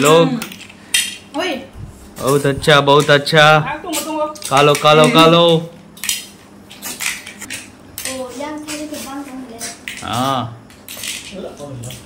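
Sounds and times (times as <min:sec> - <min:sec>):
snail shells clicking on bowl and plates: 0:03.9 - 0:09.0.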